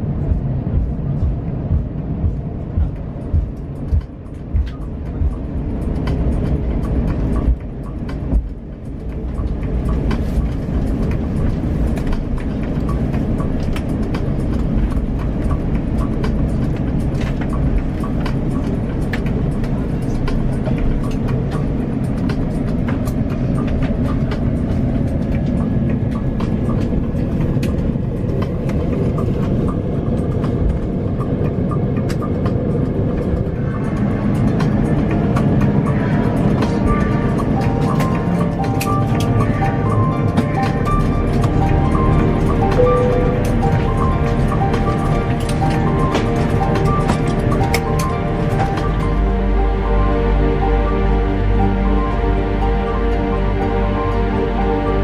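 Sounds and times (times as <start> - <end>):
aircraft cabin rumble: 0.0 - 55.0
background music: 0.0 - 55.0.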